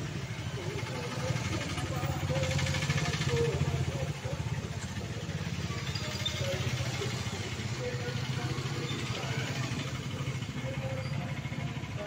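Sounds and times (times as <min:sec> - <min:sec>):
motorcycle engine at low revs: 0:00.0 - 0:12.0
people's voices: 0:00.0 - 0:12.0.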